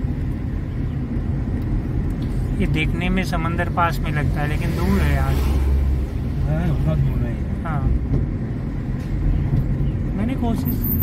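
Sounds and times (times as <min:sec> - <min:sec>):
car engine rumble: 0:00.0 - 0:11.0
tyre road noise: 0:00.0 - 0:11.0.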